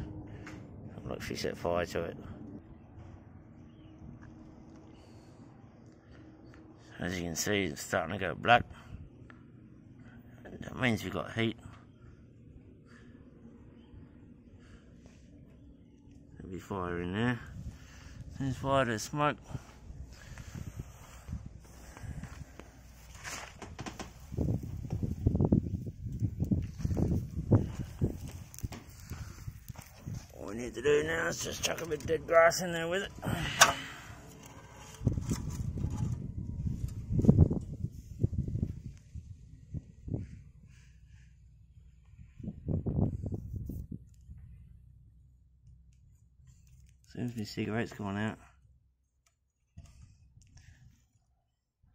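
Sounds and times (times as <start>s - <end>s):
wind buffeting microphone: 0.0s - 5.2s, 17.4s - 44.8s
footsteps on dirt: 26.5s - 30.8s.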